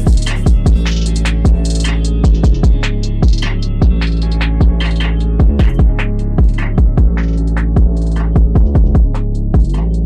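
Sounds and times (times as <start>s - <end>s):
deep sustained bass: 0.0s - 10.0s
hi-hat ticks: 0.0s - 10.0s.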